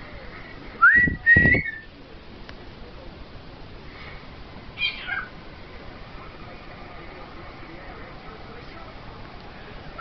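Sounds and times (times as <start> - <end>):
cockatiel call: 4.8 - 5.3.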